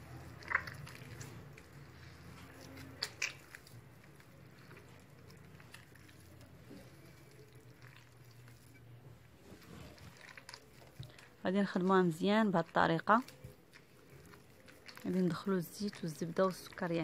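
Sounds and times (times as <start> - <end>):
wet squishing of mixture: 0.0 - 17.0.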